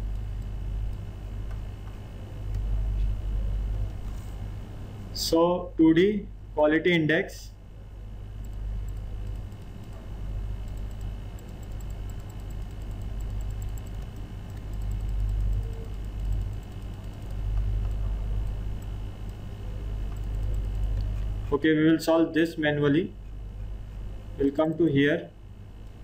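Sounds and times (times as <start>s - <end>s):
low steady hum: 0.0s - 26.0s
mouse and keyboard clicking: 8.4s - 19.4s, 20.1s - 21.3s.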